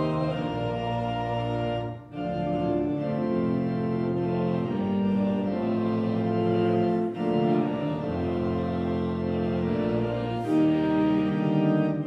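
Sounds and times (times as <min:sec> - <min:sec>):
church organ playing hymn: 0:00.0 - 0:12.0.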